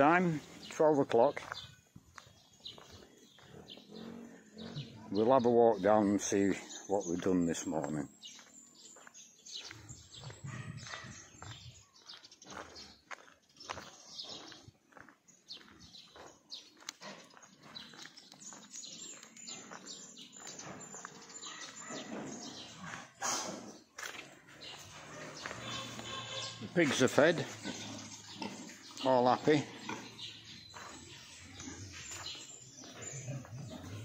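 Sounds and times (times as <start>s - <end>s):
footsteps on concrete: 0.1s - 5.3s, 6.0s - 29.1s, 29.8s - 34.0s
pigs grunting: 3.0s - 7.7s, 20.6s - 34.0s.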